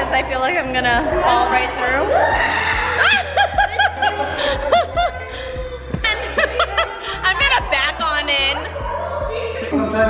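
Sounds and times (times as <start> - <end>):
high-pitched laughter: 3.0 - 7.5.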